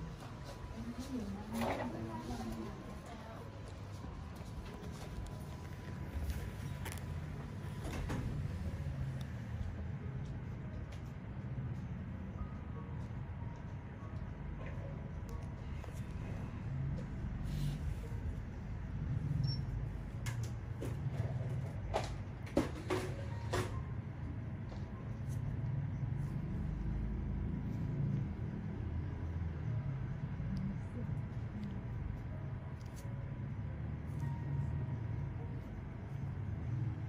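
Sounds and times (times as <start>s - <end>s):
low background rumble: 23.7s - 37.0s.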